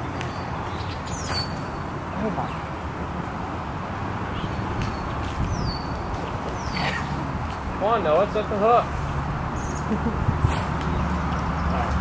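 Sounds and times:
wind rumble on microphone: 3.7s - 7.8s, 8.9s - 12.0s.

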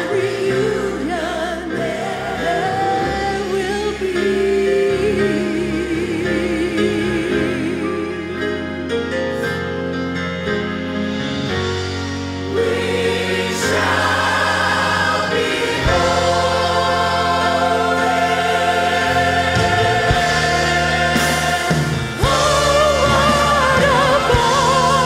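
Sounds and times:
church choir singing: 0.0s - 9.5s, 11.4s - 25.0s.

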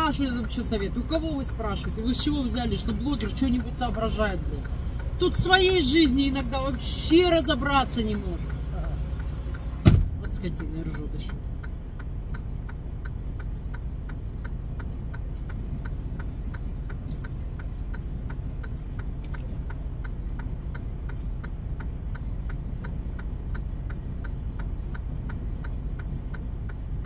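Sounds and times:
light ticking: 0.0s - 27.0s
truck engine idling: 0.0s - 27.0s.

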